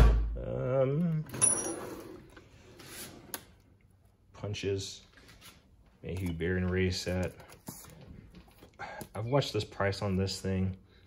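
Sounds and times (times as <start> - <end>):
metallic ring: 1.4 - 2.0.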